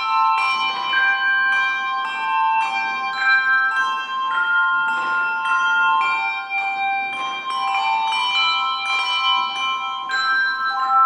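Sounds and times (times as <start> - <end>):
handbell choir playing: 0.0 - 11.0.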